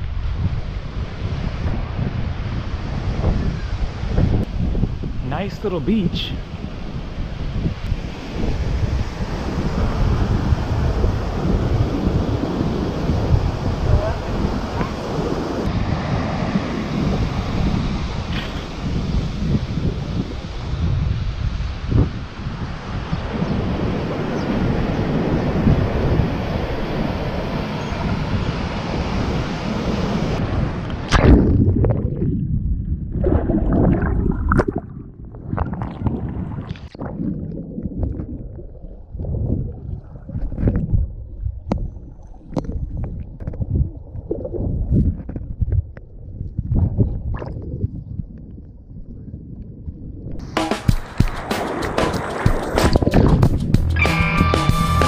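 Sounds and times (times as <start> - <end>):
ocean surf: 0.0 - 31.2, 50.4 - 55.0
wind buffeting microphone: 0.0 - 54.0
underwater churning: 31.0 - 45.5, 47.2 - 48.0.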